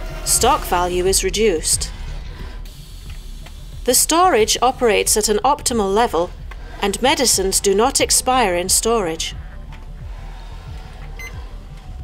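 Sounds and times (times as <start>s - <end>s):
quiet music with bass line: 0.0s - 12.0s.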